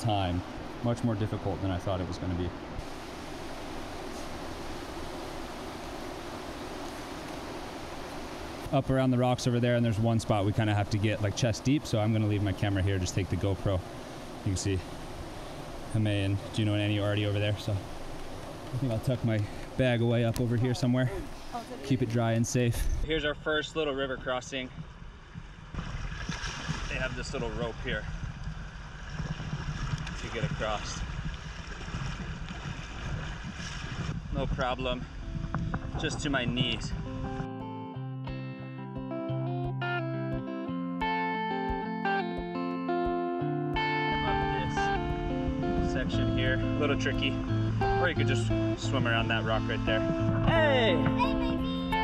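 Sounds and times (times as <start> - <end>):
river rushing over stones: 2.6 - 22.0
river rushing over rocks: 2.8 - 8.7
water moving around wading legs: 2.8 - 8.8, 9.5 - 22.2, 25.2 - 34.7.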